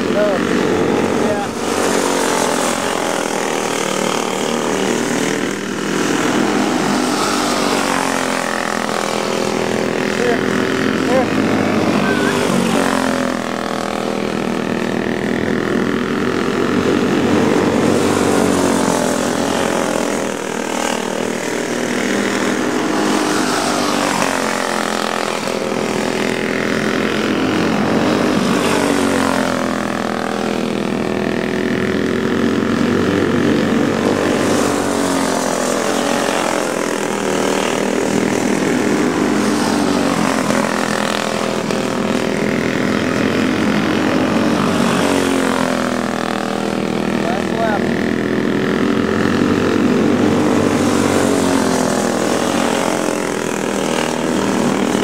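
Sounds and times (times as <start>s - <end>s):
go-kart engines racing: 0.0s - 55.0s.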